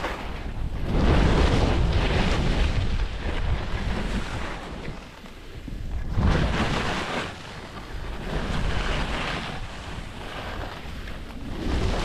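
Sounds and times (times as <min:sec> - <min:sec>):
wind rushing over microphone: 0:00.0 - 0:12.0.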